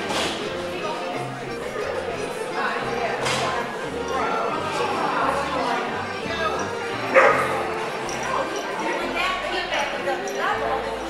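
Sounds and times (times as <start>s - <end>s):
voices in a busy hall: 0.0s - 11.0s
dog barking: 7.1s - 7.7s.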